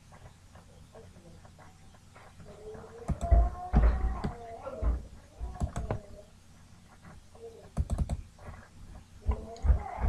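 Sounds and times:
computer mouse and keyboard clicks: 5.6s - 6.0s, 7.8s - 8.2s.

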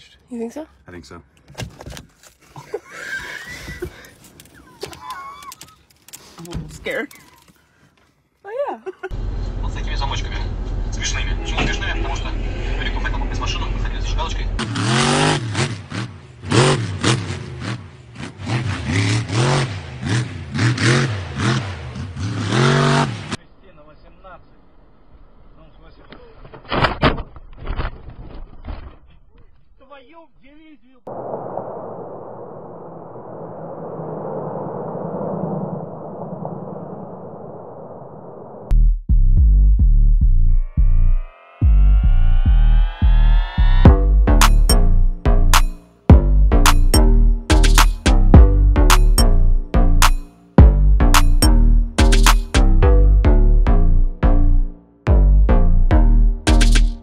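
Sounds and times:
quiet vehicle noise: 0.0s - 14.6s, 23.2s - 27.5s
woman squealing with laughter: 2.6s - 4.0s, 4.6s - 5.8s, 8.7s - 9.1s
off-road buggy engine revving: 9.2s - 23.4s.

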